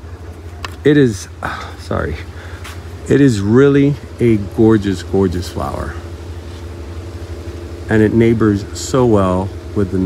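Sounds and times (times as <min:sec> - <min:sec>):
person speaking: 0:00.4 - 0:06.7, 0:07.8 - 0:10.0.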